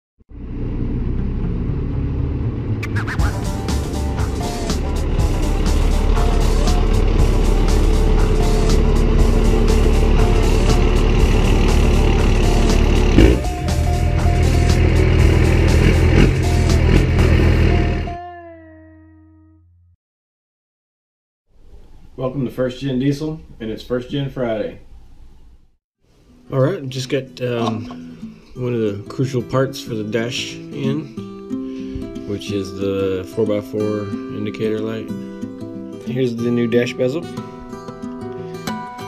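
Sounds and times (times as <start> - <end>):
diesel engine rumbling and clattering: 0.3 - 18.2
music: 2.8 - 19.9, 26.1 - 39.0.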